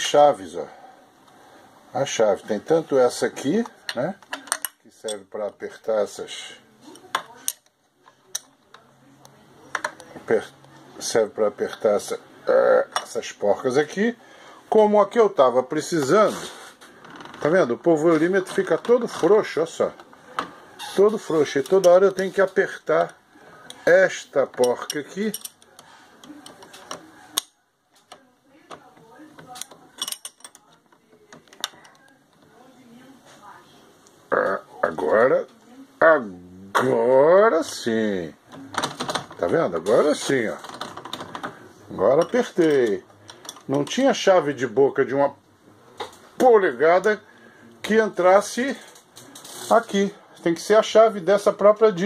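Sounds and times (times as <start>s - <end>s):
person speaking: 1.9s - 16.7s, 17.4s - 27.4s, 41.4s - 52.0s.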